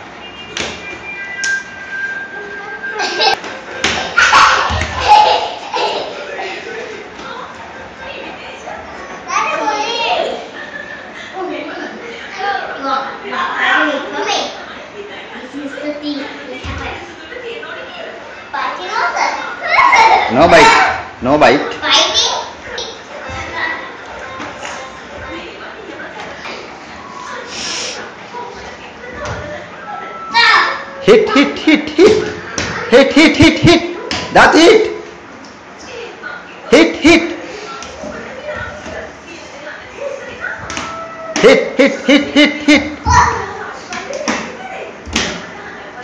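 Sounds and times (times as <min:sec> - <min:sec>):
children's voices playing: 0:02.3 - 0:31.0, 0:37.4 - 0:46.0.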